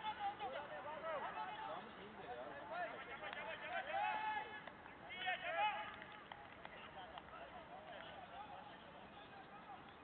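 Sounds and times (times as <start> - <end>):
men calling and shouting: 0.0 - 10.0.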